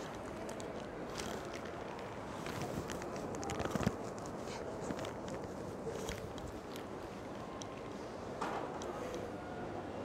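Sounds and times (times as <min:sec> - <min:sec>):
indoor ambience hush: 0:00.0 - 0:10.0.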